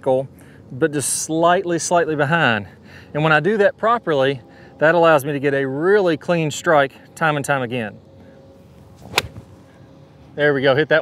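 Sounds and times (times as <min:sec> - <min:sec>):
golf club striking ball: 0:08.8 - 0:09.6
golf club swish: 0:08.8 - 0:09.6.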